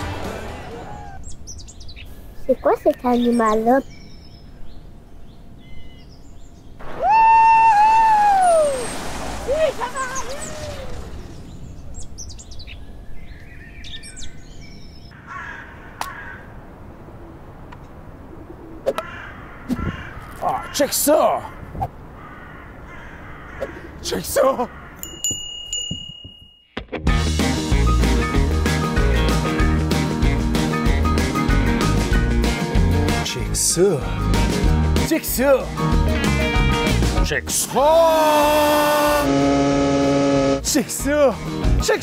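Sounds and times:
crow cawing: 15.2 - 16.6, 19.0 - 20.9, 21.5 - 24.0, 24.6 - 25.0
person's long held cry: 37.8 - 39.3.

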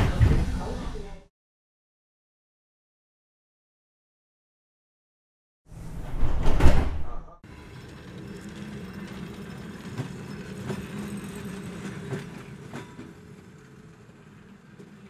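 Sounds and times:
train door shutting: 5.8 - 13.3
low hum of train: 7.5 - 15.0.

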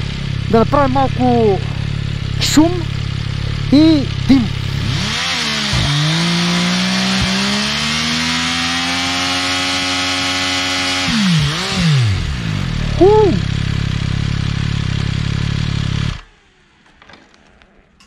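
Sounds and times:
motorcycle engine revving: 0.0 - 18.0
tyre spinning on asphalt: 16.8 - 18.0.

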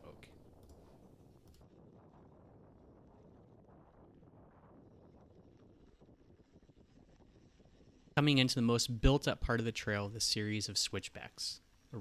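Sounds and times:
wind rushing on microphone: 0.0 - 10.6.

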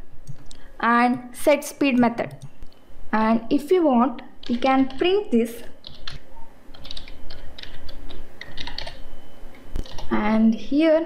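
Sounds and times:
typing on computer keyboard: 5.8 - 9.0, 9.8 - 10.1.

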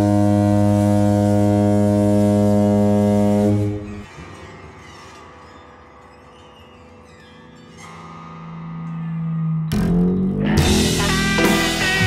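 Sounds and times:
ship's horn blast: 0.0 - 4.0.

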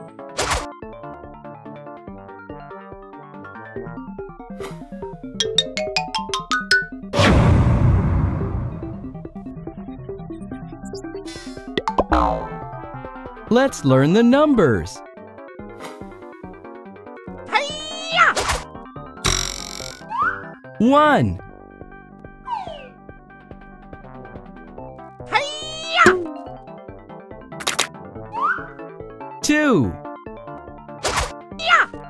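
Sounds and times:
cheerful children's music: 5.3 - 7.1, 12.1 - 15.0, 20.1 - 21.4
boing-like falling pitch slide: 11.8 - 12.7, 26.0 - 26.4.

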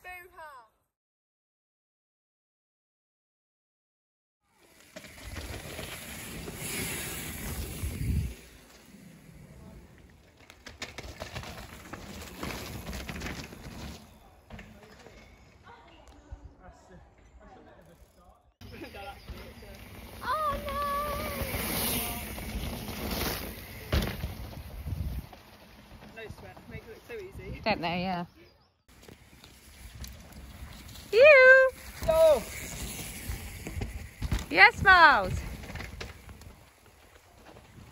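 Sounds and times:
bike tyres rattling over loose ground: 4.5 - 16.0, 17.8 - 27.7, 28.9 - 37.9.

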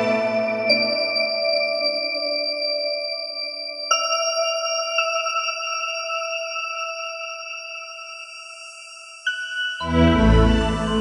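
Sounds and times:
chime-like synthesizer tone: 0.0 - 11.0.

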